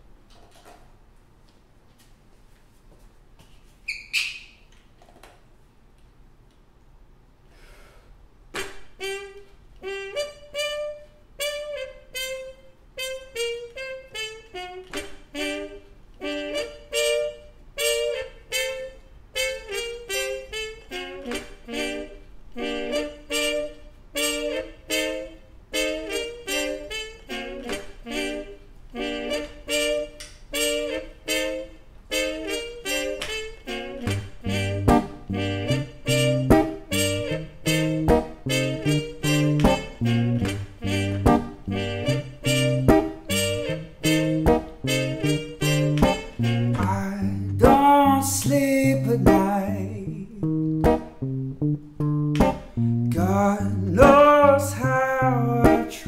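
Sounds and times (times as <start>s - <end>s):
looped trumpet phrases: 8.9s - 56.0s
sharp click: 52.3s - 52.8s.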